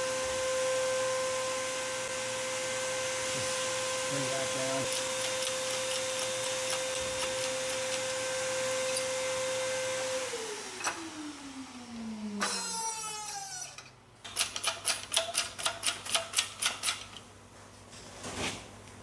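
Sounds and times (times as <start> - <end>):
electric motor running and winding down: 0.0 - 13.9.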